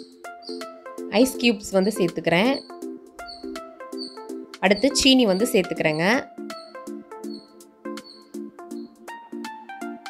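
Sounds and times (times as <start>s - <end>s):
bouncy plucked background music: 0.0s - 10.0s
person speaking: 1.1s - 2.6s, 4.6s - 6.3s.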